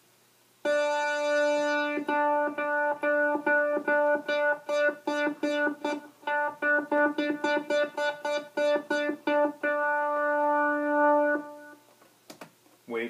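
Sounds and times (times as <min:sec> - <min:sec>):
analogue synthesizer repeated notes: 0:00.6 - 0:11.8.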